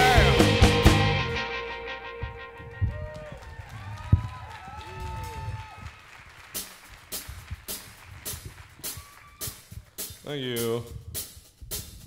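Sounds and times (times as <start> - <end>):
rock band playing live: 0.0 - 3.2.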